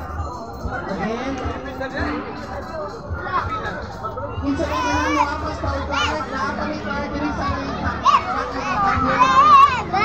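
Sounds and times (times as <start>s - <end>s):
children calling out and chattering: 0.0s - 10.0s.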